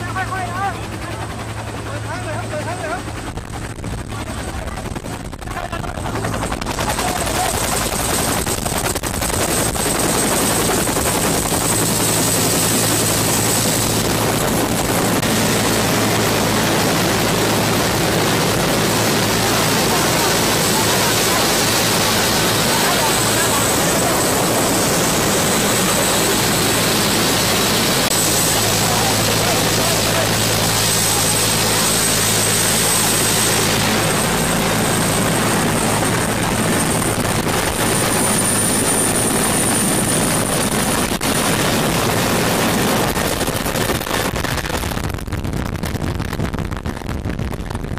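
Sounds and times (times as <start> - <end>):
helicopter rotor noise: 0.0 - 47.8
high turbine whine: 0.0 - 47.9.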